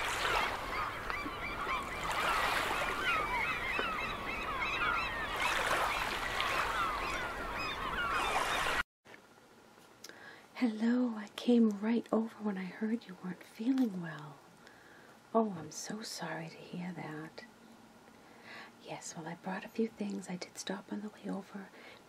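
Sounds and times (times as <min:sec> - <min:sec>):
flock of birds calling: 0:00.0 - 0:08.8.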